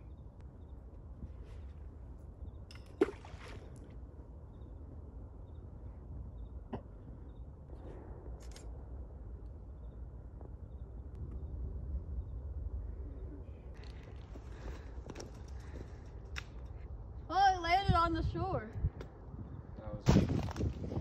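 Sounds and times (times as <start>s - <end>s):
stone hitting water: 2.7s - 3.8s
wind rumbling on microphone: 4.8s - 21.0s.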